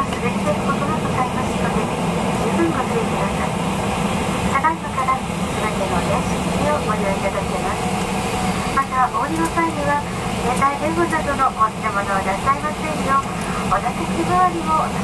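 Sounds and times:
flight attendant voice over pa: 0.0 - 3.7, 4.5 - 7.9, 8.6 - 15.0
jet engine and cabin noise: 0.0 - 15.0.

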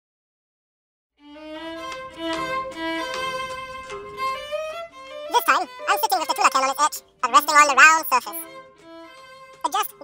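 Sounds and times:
violin playing slow held notes: 1.2 - 5.9, 8.4 - 9.6
person speaking: 5.3 - 8.5, 9.6 - 10.0.

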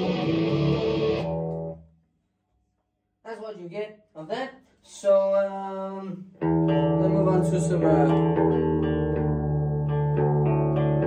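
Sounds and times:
electric guitar note and chord: 0.0 - 1.8, 6.4 - 11.0.

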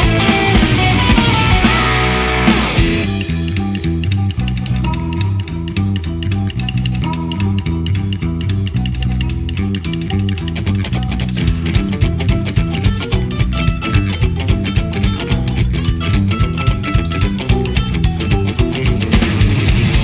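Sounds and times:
fast folk-punk instrumental: 0.0 - 20.0.

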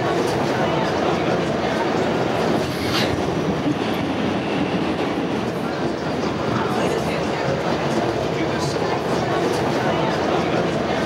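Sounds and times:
subway train running: 0.0 - 11.0.

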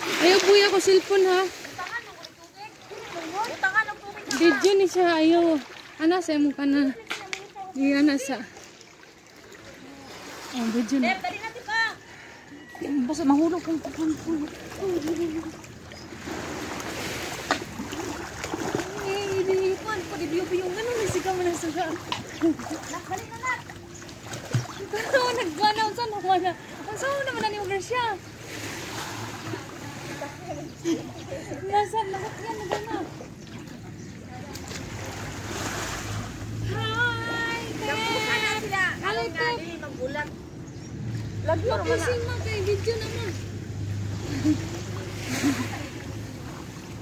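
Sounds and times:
water washing against pebbly shore: 0.0 - 6.2
water splashing and sloshing: 0.0 - 47.0.

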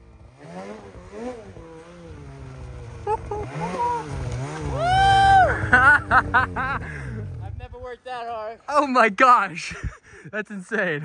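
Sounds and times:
snowmobile engine revving: 0.0 - 7.9.

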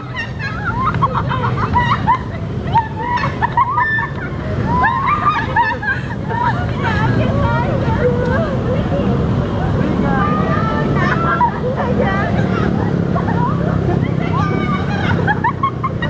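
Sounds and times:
low background rumble: 0.0 - 16.0.

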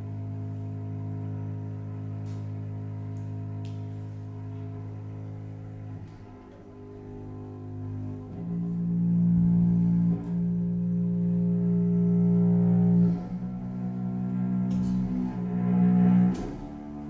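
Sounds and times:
cello and double bass bowed notes: 0.0 - 17.0.

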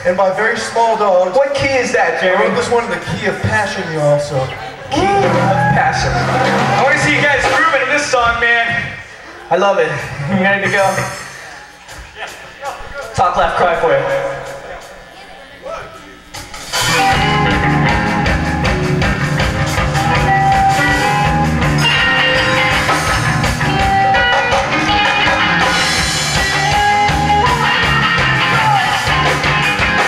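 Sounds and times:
live rock band playing: 4.9 - 8.4, 16.2 - 30.0.

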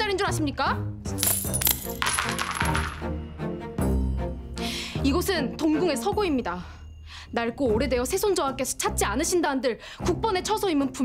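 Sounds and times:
background music: 0.0 - 11.0
metal coins clinking: 1.2 - 3.1.

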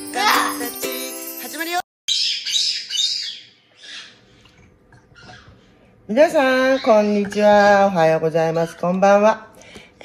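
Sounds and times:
parrot chicks begging calls: 2.1 - 4.4, 6.4 - 7.2.

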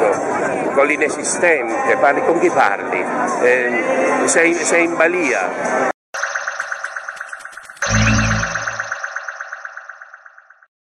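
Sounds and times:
pulsing synth jingle: 6.2 - 10.7.

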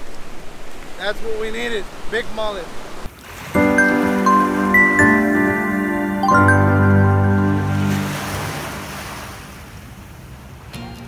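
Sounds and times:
rushing surf-like noise: 0.0 - 10.2
music chord: 3.6 - 9.5.

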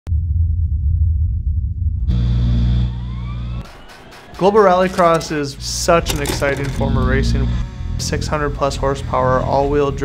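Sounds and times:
race car engine whining: 2.8 - 8.3.

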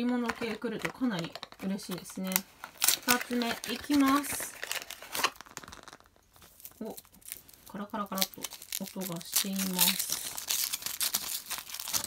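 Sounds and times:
foil rustling: 2.4 - 12.0.

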